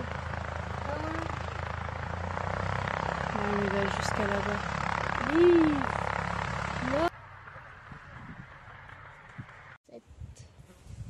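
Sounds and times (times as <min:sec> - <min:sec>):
light aircraft engine and propeller: 0:00.0 - 0:09.8
outdoor background: 0:00.0 - 0:11.0.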